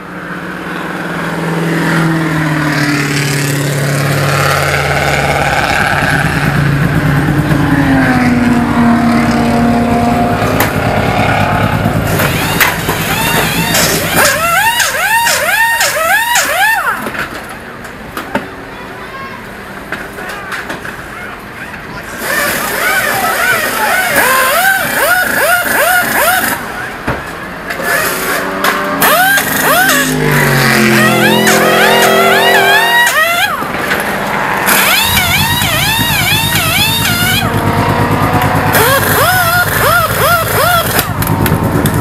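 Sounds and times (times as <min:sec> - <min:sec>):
car engine running: 0:00.0 - 0:17.8, 0:28.7 - 0:42.0
pneumatic impact wrenches whirring: 0:12.0 - 0:17.6, 0:22.1 - 0:26.7, 0:27.7 - 0:37.5, 0:38.2 - 0:41.4.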